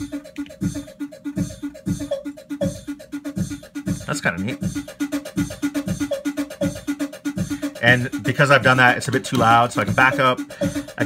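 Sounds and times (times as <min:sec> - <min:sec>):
looping drum pattern: 0:00.0 - 0:11.0.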